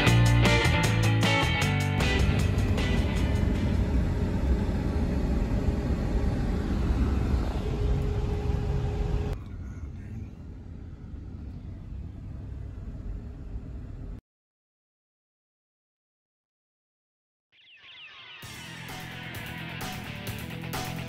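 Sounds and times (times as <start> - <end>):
road and engine rumble in vehicle: 0.0 - 14.2.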